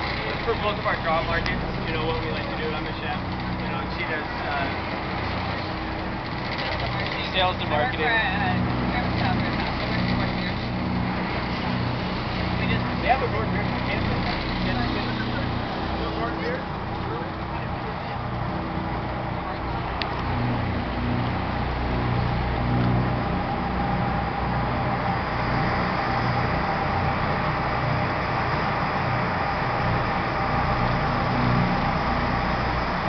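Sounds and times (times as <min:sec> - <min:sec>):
boat engines droning: 0:00.0 - 0:33.0
water noise: 0:00.0 - 0:33.0
wind: 0:00.0 - 0:33.0.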